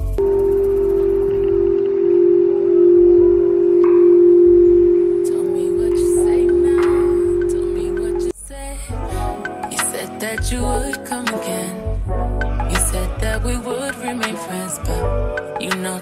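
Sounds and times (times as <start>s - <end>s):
crystal singing bowl tone: 0.2s - 8.3s.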